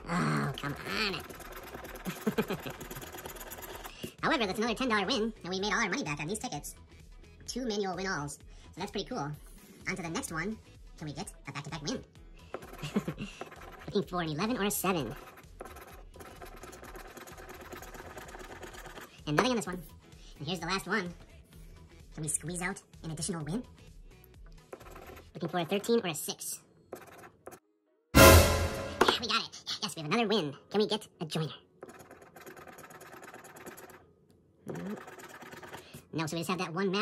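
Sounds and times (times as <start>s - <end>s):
scratch card being scraped: 0.6s - 3.9s, 12.4s - 19.2s, 24.6s - 25.3s, 26.9s - 27.6s, 31.8s - 34.0s, 34.7s - 35.9s.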